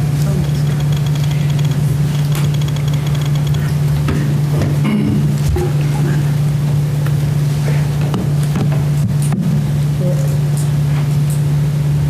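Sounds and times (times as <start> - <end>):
loud steady low hum: 0.0 - 12.0.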